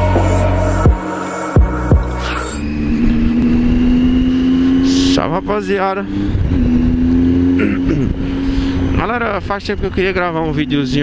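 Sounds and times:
intro music: 0.0 - 4.1
motorcycle engine cruising: 0.0 - 11.0.

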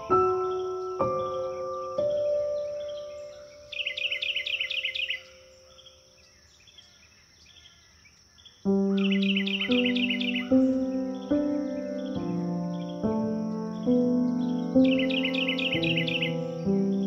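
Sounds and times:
soft piano: 0.0 - 6.1, 8.6 - 17.0
songbird trilling: 0.0 - 17.0.

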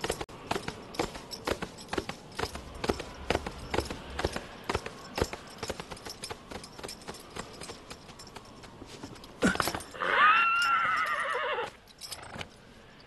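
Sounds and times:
horse hooves clip-clopping on grass: 0.0 - 12.5
horse whinnying: 9.5 - 11.8.

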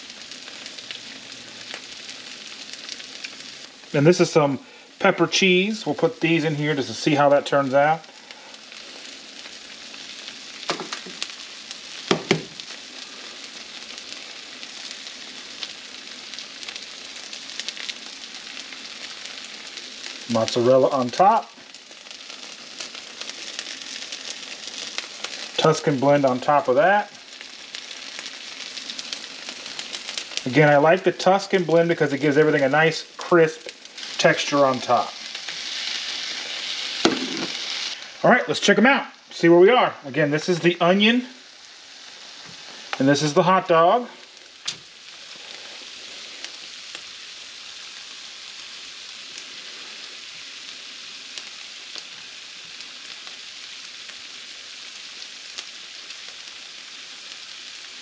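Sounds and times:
cheese sizzling on hot plates: 0.0 - 58.0
sharp knock: 12.1 - 12.5.

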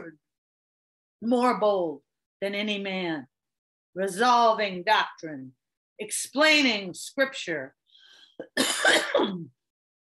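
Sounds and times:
woman clearing her throat: 8.4 - 9.6.

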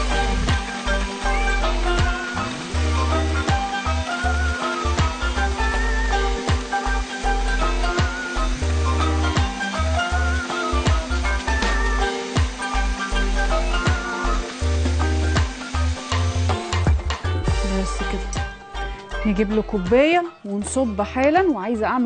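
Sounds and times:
blender running: 0.0 - 19.9
background music with beat: 0.0 - 22.0.

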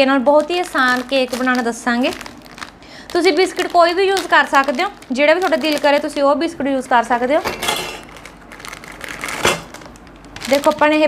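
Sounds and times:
woman talking: 0.0 - 2.4, 3.1 - 7.7, 10.4 - 11.0
wrapper crinkling: 0.0 - 11.0.

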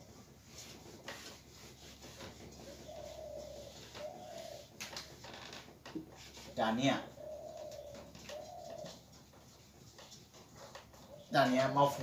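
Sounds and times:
dove cooing: 2.6 - 5.1, 6.6 - 9.4, 10.5 - 11.8.

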